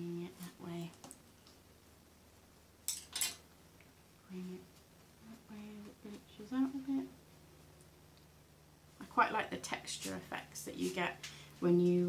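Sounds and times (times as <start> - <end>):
paintbrushes rustling on paper towel: 9.7 - 11.3.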